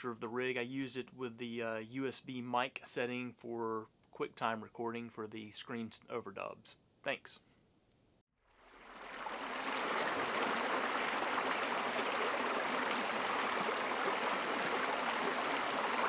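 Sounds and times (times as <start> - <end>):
creek splashing over rocks: 8.5 - 16.0.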